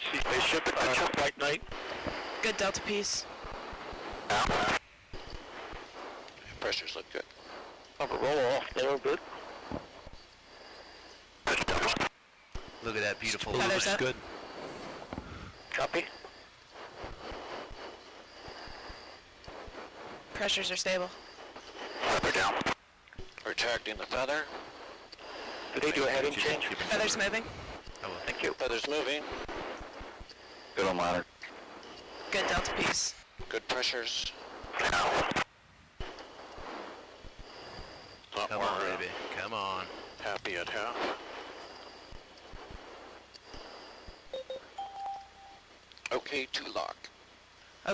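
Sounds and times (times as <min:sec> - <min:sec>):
radio channel hiss: 0:00.0 - 0:47.9
breathy noise bursts: 0:12.8 - 0:22.7
faint thin high tone: 0:44.3 - 0:45.7.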